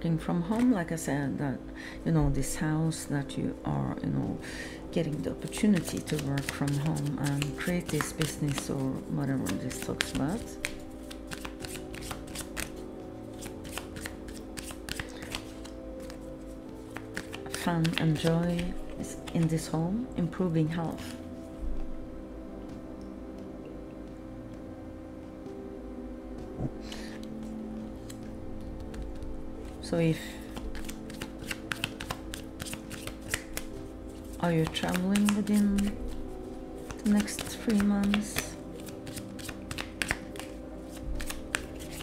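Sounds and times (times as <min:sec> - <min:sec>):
soft background music: 0:00.0 - 0:42.0
cards being shuffled: 0:05.0 - 0:19.7, 0:26.6 - 0:29.8, 0:30.4 - 0:42.0.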